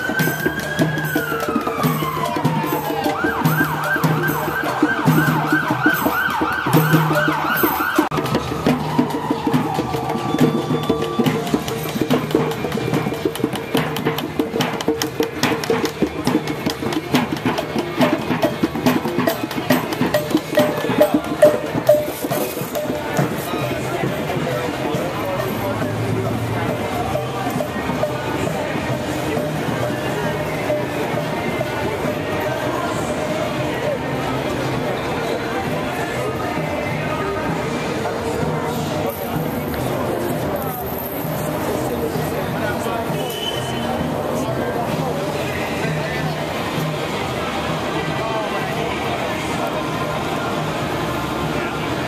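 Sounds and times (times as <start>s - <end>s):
siren yelping: 0.0s - 11.5s
crowd on foot: 0.0s - 52.0s.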